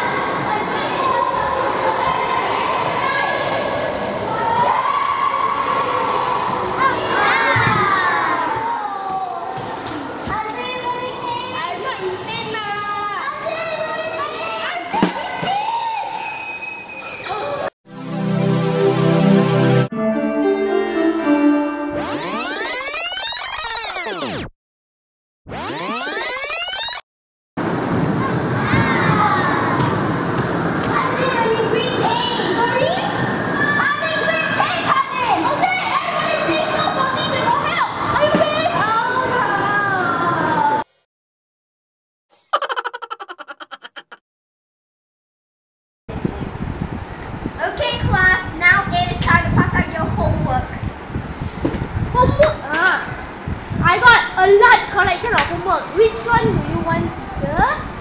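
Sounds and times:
hubbub of a busy hall: 0.0 - 17.7, 27.8 - 40.8
children yelling: 4.3 - 9.5, 28.2 - 29.8.

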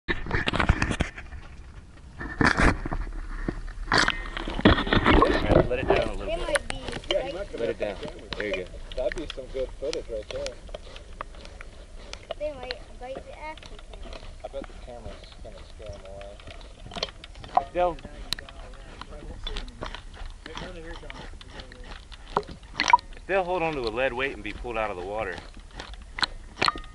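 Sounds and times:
muffled voices: 5.1 - 10.7
underwater clicks and knocks: 16.2 - 21.2, 22.0 - 24.0, 25.4 - 26.9.

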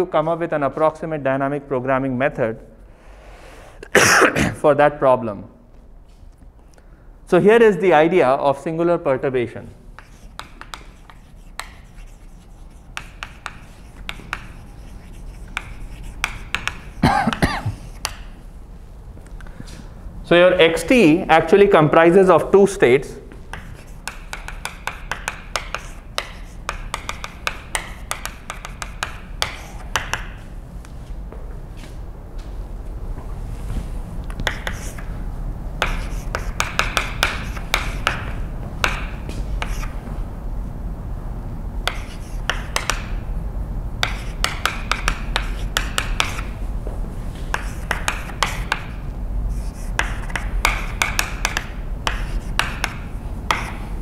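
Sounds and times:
low room hum: 0.0 - 54.0
chalk tapping and scratching: 9.9 - 18.4, 23.3 - 30.5, 33.7 - 35.1, 35.8 - 40.0, 41.8 - 43.2, 44.0 - 46.6, 47.3 - 54.0.

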